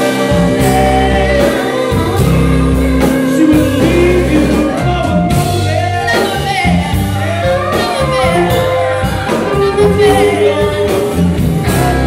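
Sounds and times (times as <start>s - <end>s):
acoustic guitar: 0.0s - 12.0s
bass guitar: 0.0s - 12.0s
drums: 0.0s - 12.0s
electric guitar: 0.0s - 12.0s
person singing: 0.0s - 12.0s.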